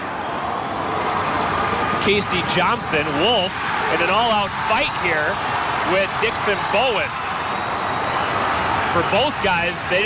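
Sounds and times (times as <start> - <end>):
arena crowd cheering and yelling: 0.0 - 10.0.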